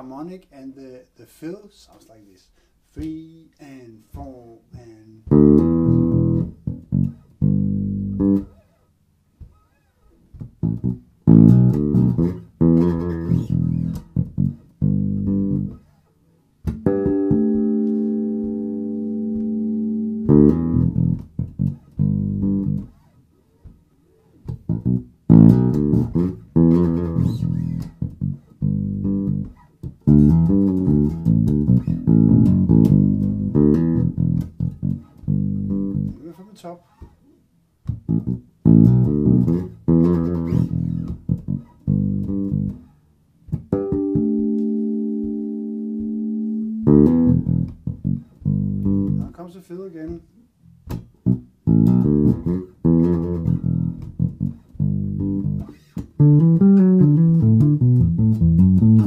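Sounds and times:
electric bass groove: 4.1s - 36.4s, 37.0s - 49.4s, 50.0s - 59.0s
ringing bass harmonic: 43.8s - 49.2s.

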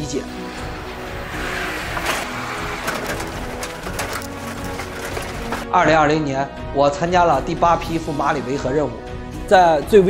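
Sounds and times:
truck engines running: 0.0s - 5.7s
background music: 0.0s - 10.0s.

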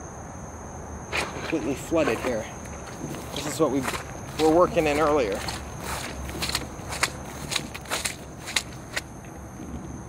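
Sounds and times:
high insect trill: 0.0s - 10.0s
footsteps through wet grass: 1.1s - 9.1s.

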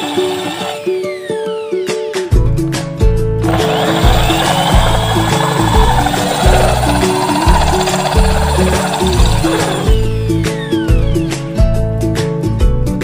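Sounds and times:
drill grinding into ceramic: 0.0s - 0.8s, 3.5s - 10.5s
background music: 0.0s - 13.0s.

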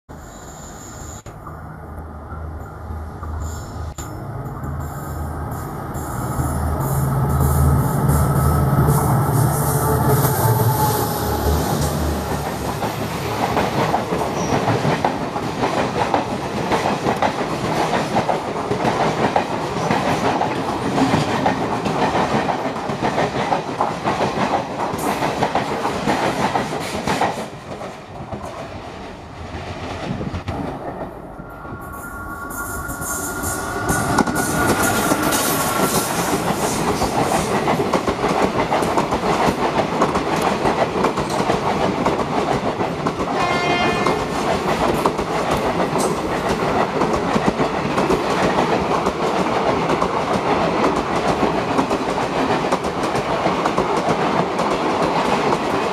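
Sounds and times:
train coaches rumbling past: 0.1s - 55.9s
train wheels clickety-clack: 6.0s - 28.8s, 32.9s - 55.9s
two-note train horn: 43.4s - 44.3s.

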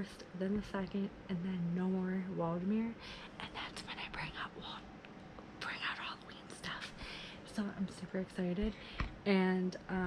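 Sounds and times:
woman whispering: 0.0s - 4.9s, 5.6s - 9.0s.

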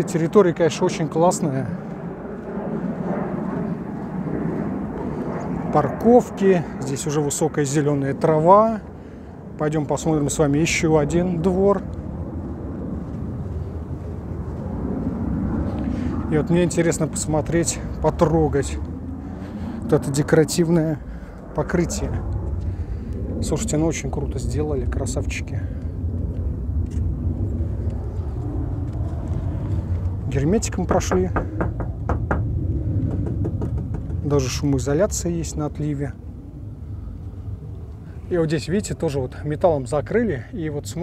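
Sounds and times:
steady low rumble: 0.0s - 41.0s
wind buffeting microphone: 0.0s - 41.0s.

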